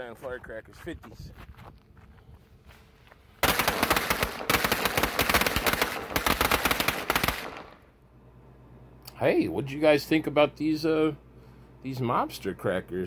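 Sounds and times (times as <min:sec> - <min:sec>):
firecrackers popping: 0:03.4 - 0:07.8.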